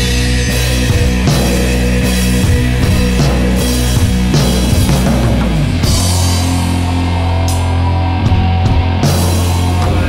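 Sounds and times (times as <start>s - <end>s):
distorted doom metal band: 0.0s - 10.0s.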